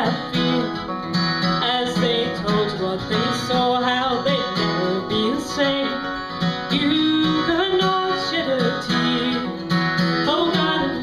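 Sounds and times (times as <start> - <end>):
acoustic guitar: 0.0 - 11.0
resonator guitar sliding notes: 0.0 - 11.0.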